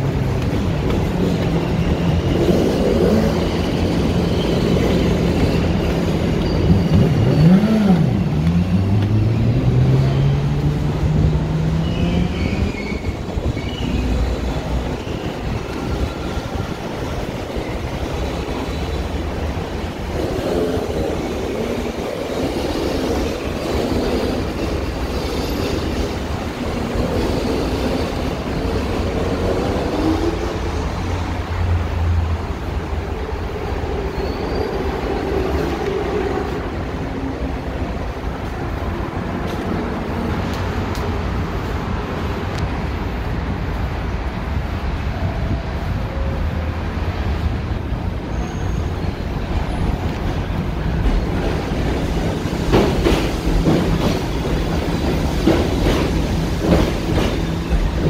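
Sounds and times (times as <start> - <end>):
elevated train rumbling: 0.0 - 58.0.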